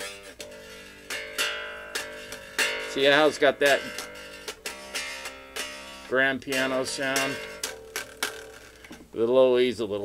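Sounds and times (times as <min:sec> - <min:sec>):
electric bass plucked notes: 0:00.0 - 0:08.9.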